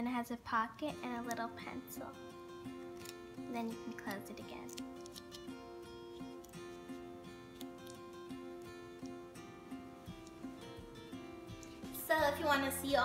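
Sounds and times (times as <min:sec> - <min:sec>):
plucked acoustic guitar music: 0:00.5 - 0:13.0.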